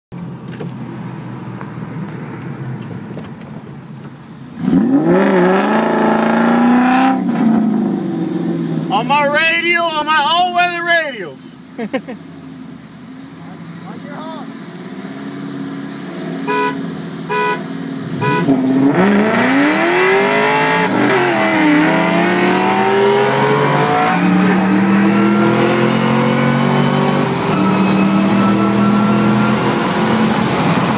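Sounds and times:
car engine accelerating hard: 4.4 - 9.0, 13.4 - 30.9
car horn beeps: 16.5 - 18.6.

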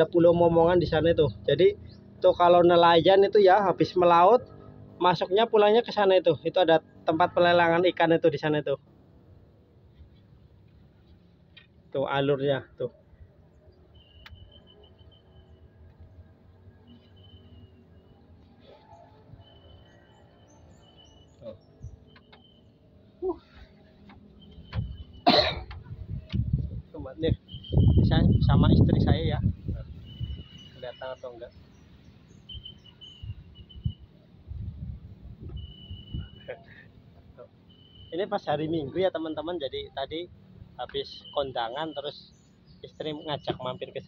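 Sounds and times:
high bird chirps: 13.1 - 25.3, 30.0 - 34.2
bird whistles: 13.9 - 15.6, 27.5 - 28.2, 30.0 - 31.0, 32.4 - 34.1, 35.4 - 36.5
wind and handling rumble: 20.7 - 30.5, 33.1 - 36.4.

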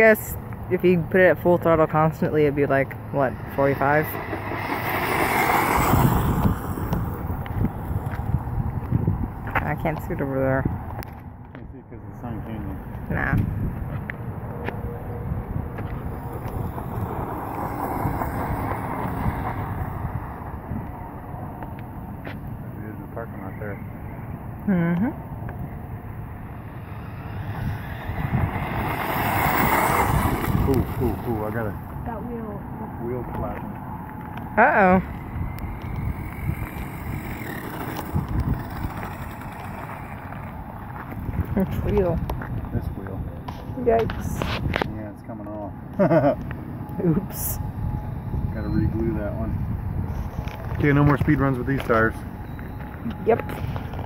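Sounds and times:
wind on microphone: 0.0 - 21.9, 25.2 - 32.4, 34.2 - 45.0, 47.1 - 54.0
toy buggy motor over gravel: 3.3 - 8.3, 15.9 - 20.4, 26.6 - 31.9, 34.6 - 43.1
electric motor whine: 34.2 - 42.0.

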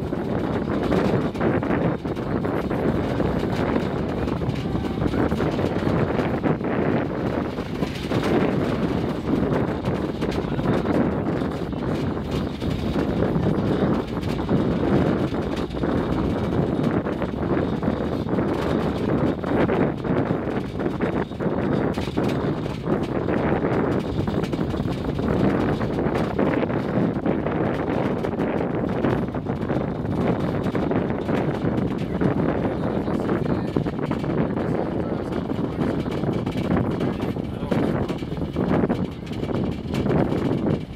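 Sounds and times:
train rumble on track: 0.0 - 40.9
wheel clicks and knocks: 0.0 - 40.9.

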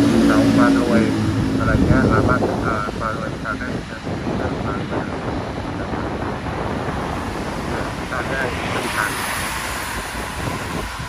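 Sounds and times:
road rumble on wet pavement: 0.0 - 11.0
wind buffeting microphone: 0.0 - 11.0.

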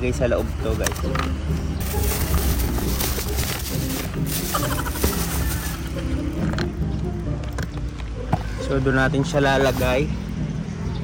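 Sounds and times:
background music: 0.0 - 11.0
paper rustling: 1.8 - 5.9.

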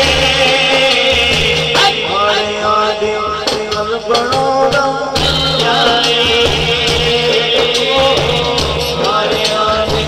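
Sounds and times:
man singing into microphone: 0.0 - 10.0
percussion beat: 0.0 - 10.0.

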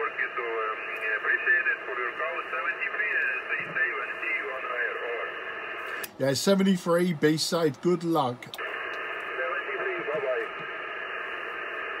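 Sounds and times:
faint garbled radio voice: 0.0 - 5.5, 9.3 - 10.6
radio receiver hiss: 0.0 - 12.0.

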